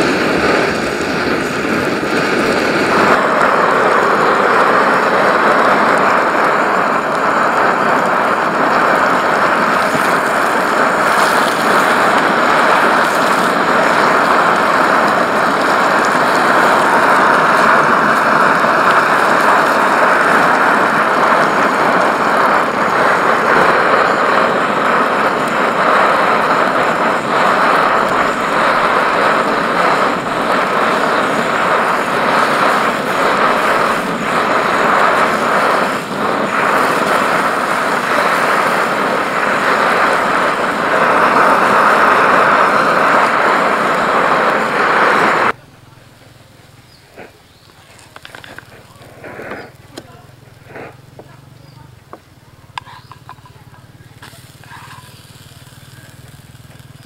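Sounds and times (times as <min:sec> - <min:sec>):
omelette sizzling in oil: 0:00.0 - 0:45.6, 0:52.7 - 0:57.0
camping stove burner roaring: 0:00.0 - 0:57.0.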